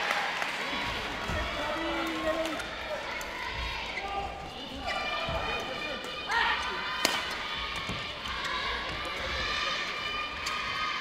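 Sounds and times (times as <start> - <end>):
players shouting: 0.6 - 11.0.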